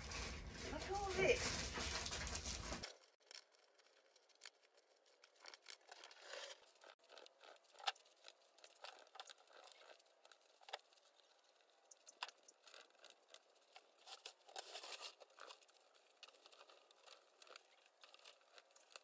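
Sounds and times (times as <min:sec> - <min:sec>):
yard debris being handled: 0:00.0 - 0:19.0.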